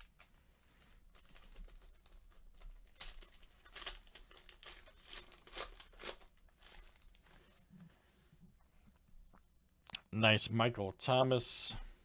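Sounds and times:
foil wrapper tearing and crinkling: 1.0 - 7.4.

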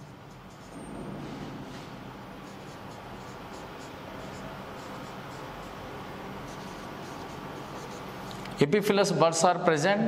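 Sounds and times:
marker pen writing on whiteboard: 0.0 - 8.6
steady background hiss: 0.0 - 10.0.

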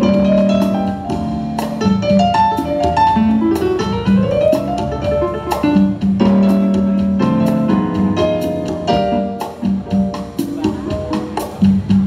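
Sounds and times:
keyboard melody: 0.0 - 12.0
latin jazz band playing: 0.0 - 12.0.

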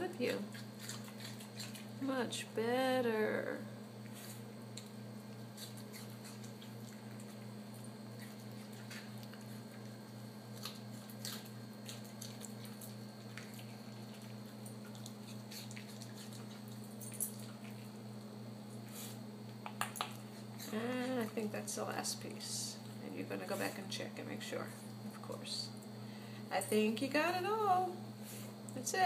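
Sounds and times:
steady low hum: 0.0 - 29.0
dog chewing and crunching: 0.1 - 2.0, 4.1 - 21.6.

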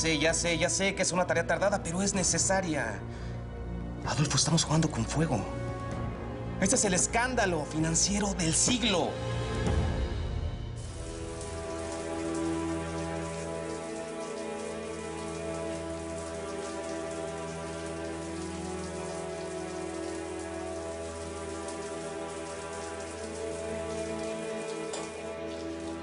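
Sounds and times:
soft background score: 0.0 - 26.0
shower spraying on glass: 10.8 - 26.0.

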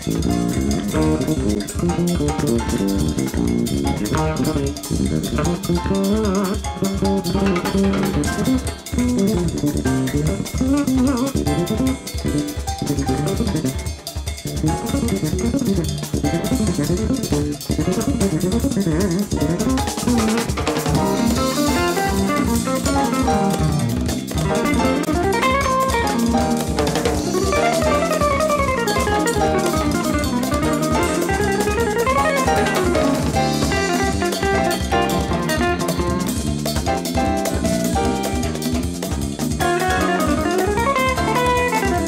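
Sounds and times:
fast melodic runs: 0.0 - 42.0
jazz-fusion band playing: 0.0 - 42.0
steady drum beat: 0.0 - 42.0.

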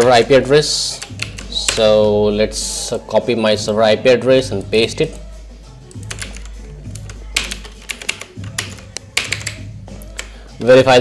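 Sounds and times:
soft background music: 0.0 - 11.0
keyboard keys tapping: 0.9 - 2.0, 5.9 - 10.4.

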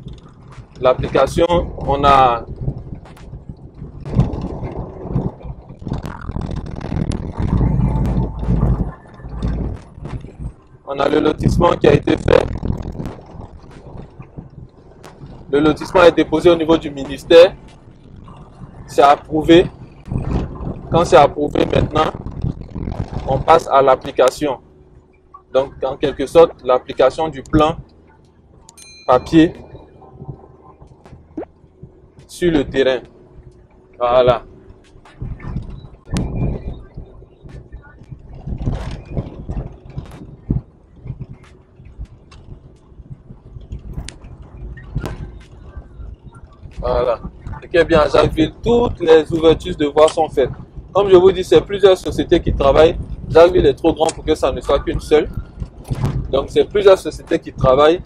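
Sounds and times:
car rumbling inside cabin: 0.0 - 58.0
small clicks and knocks: 33.0 - 47.6.

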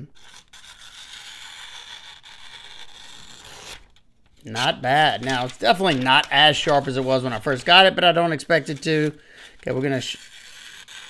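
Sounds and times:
knife blade slicing paper: 10.1 - 11.0.

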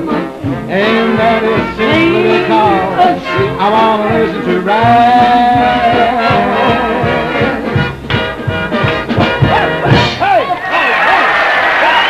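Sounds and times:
big band playing: 0.0 - 12.0
audience voices calling out: 9.5 - 12.0
audience applause: 10.4 - 12.0.

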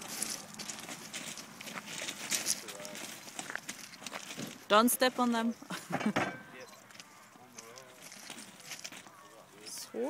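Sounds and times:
faint murmur of voices: 6.3 - 10.0.

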